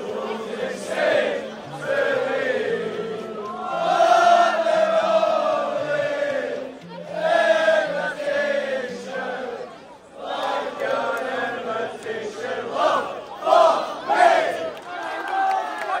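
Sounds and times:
crowd of men chanting and singing: 0.0 - 16.0.

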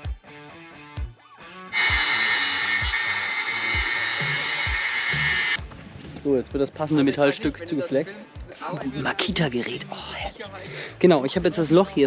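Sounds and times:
power tool whining: 1.7 - 5.6.

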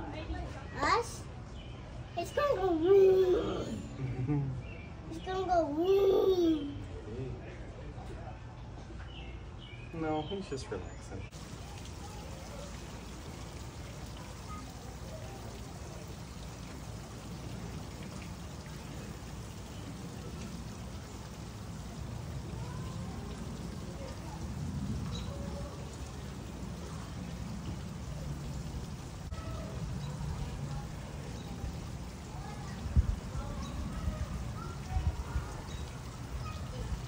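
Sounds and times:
faint distant voices: 0.0 - 37.0
rain pattering: 11.3 - 37.0.

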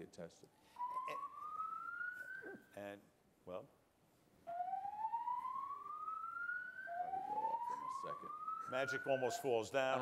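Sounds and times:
fire alarm whooping: 0.6 - 2.7, 4.5 - 10.0.

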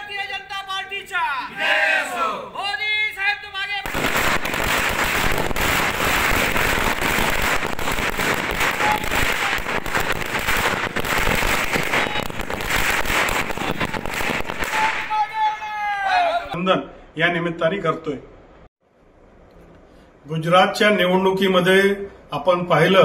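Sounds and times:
man shouting: 0.0 - 4.0, 8.6 - 9.7, 11.8 - 12.4, 13.5 - 16.6
firecrackers cracking: 3.8 - 15.2.

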